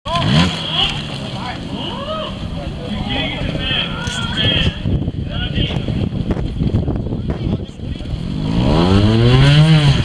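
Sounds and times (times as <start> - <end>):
motorcycle engine revving: 0.1 - 1.9, 7.8 - 10.0
spectators' voices: 0.1 - 8.3.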